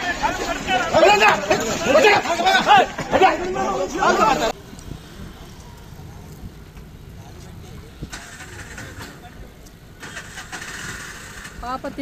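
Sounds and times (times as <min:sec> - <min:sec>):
faint voices: 0:00.0 - 0:10.6
vehicle engine rumbling: 0:00.0 - 0:12.0.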